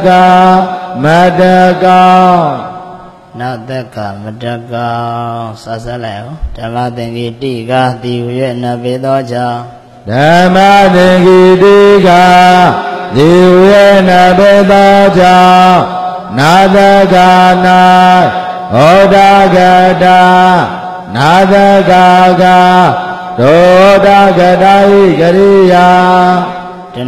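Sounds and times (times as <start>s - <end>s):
man chanting on a held note: 0.0s - 27.0s.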